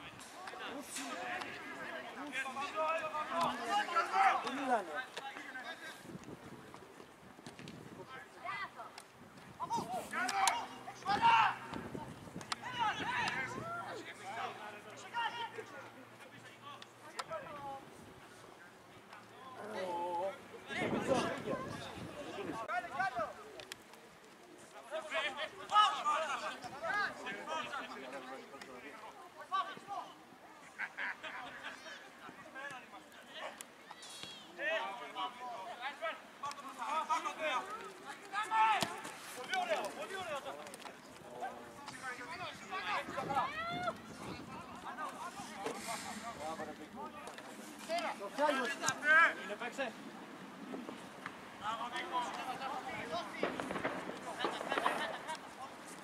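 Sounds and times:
voices calling and shouting: 0.0 - 56.0.

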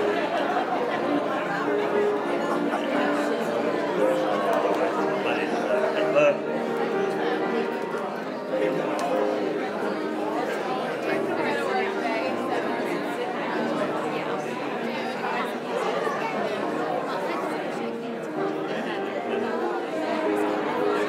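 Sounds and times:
overlapping conversation: 0.0 - 21.0
soft music: 0.0 - 21.0.

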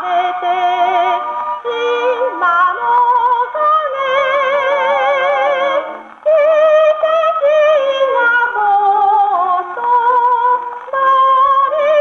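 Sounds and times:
girl singing with orchestra: 0.0 - 12.0.

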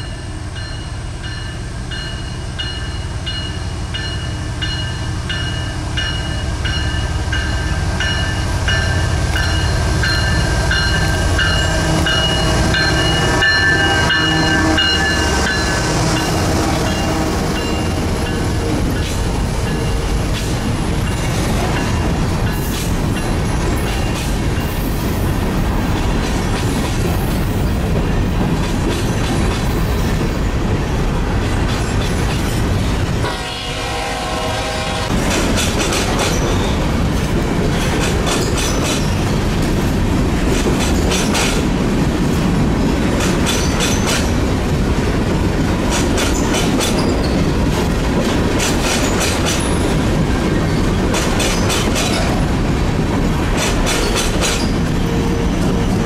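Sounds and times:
rumble of train wheels on rail: 0.0 - 56.0
clickety-clack over rail joints: 8.0 - 33.4, 35.1 - 56.0.

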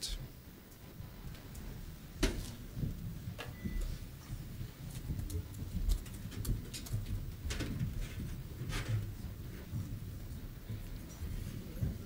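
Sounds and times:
low room rumble: 0.0 - 12.0.

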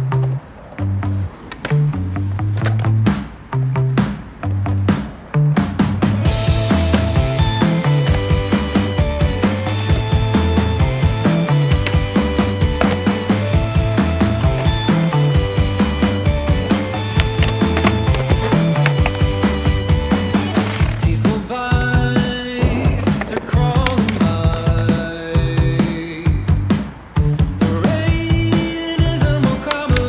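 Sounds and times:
skateboard sliding on curb: 0.0 - 26.1
rock music: 0.0 - 30.0
skateboard rolling on concrete: 0.0 - 30.0.

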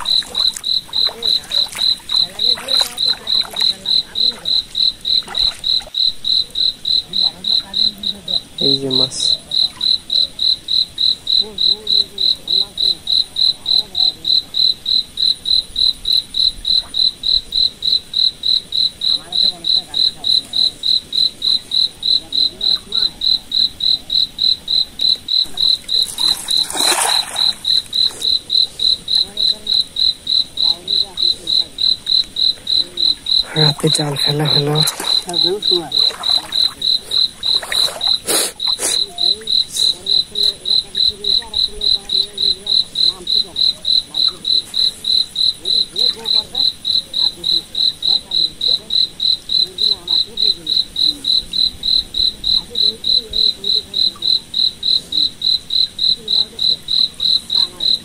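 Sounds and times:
cricket chirping: 0.0 - 58.0.

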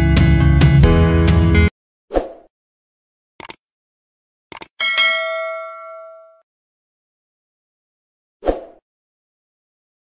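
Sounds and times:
bell chime ding: 4.8 - 6.4.

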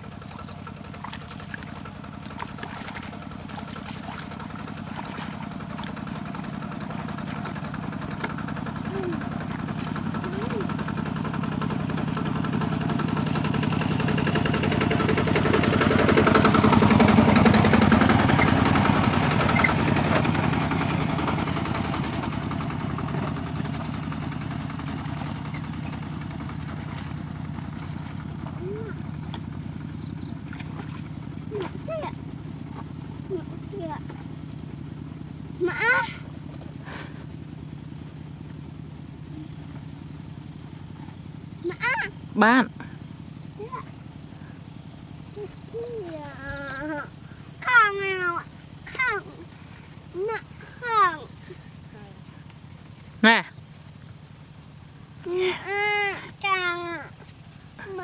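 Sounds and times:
vehicle engine passing by: 0.0 - 53.2.

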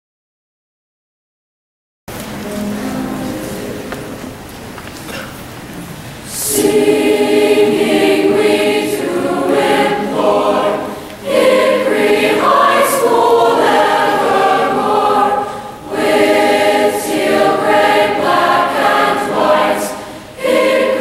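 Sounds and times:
choir singing: 2.4 - 4.6, 6.3 - 21.0.

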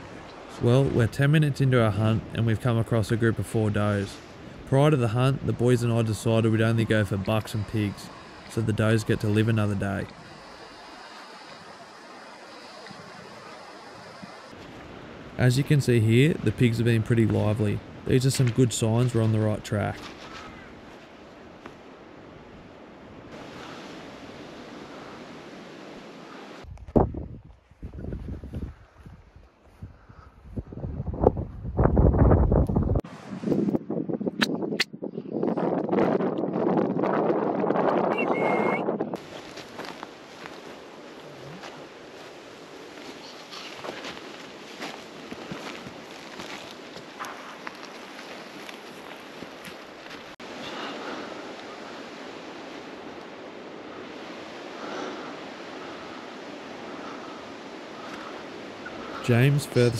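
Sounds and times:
wind buffeting microphone: 22.2 - 59.9
footsteps through dry grass: 39.2 - 50.4.

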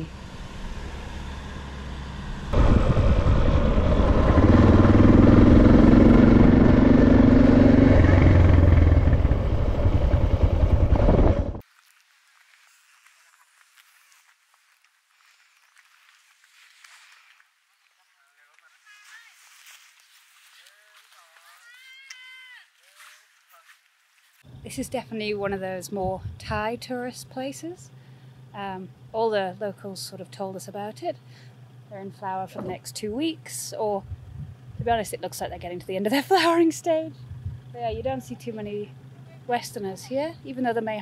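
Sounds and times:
motorcycle engine running: 0.0 - 11.6, 24.5 - 41.0
wind rush: 2.5 - 11.6, 34.0 - 35.0.

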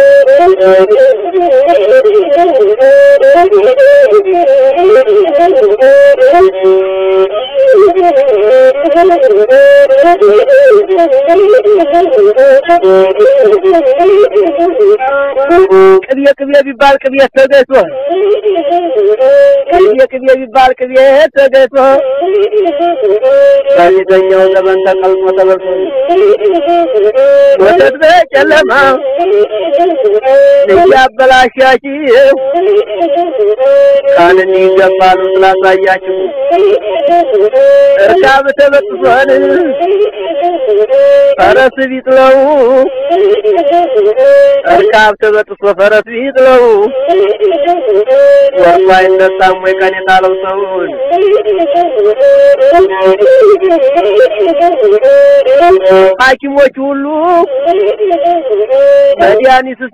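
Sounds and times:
bowed one-string fiddle: 0.0 - 59.9
person singing ornamented vocals: 0.0 - 59.9.

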